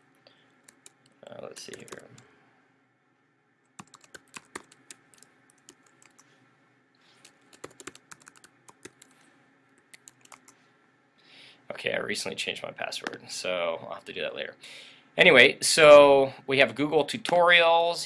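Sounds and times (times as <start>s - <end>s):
person speaking: 1.2s - 2.3s
computer keyboard keystrokes: 1.6s - 2.2s, 3.8s - 6.2s, 7.5s - 9.1s, 9.9s - 10.6s.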